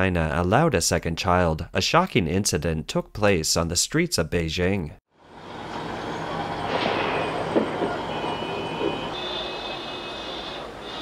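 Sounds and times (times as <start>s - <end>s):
street traffic noise: 5.2s - 11.0s
high squealing tone: 5.4s - 11.0s.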